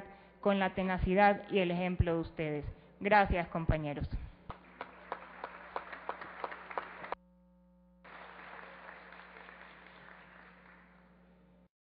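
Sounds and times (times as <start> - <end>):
clapping in a large hall: 4.5 - 7.2, 8.0 - 11.5
electronic hum: 6.9 - 8.1.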